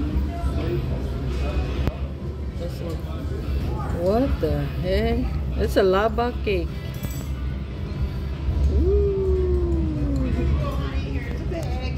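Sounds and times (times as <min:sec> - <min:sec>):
low room rumble: 0:07.5 - 0:11.9.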